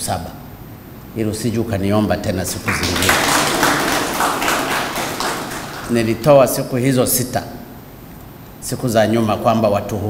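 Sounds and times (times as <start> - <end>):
people applauding: 2.6 - 6.4.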